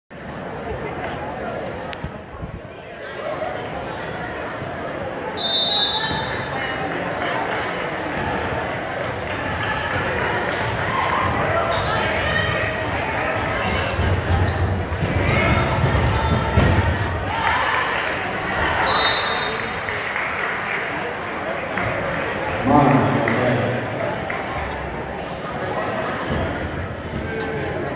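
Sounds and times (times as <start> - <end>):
spectators talking: 0.1 - 27.9
referee's whistle: 5.4 - 6.4, 18.8 - 19.7.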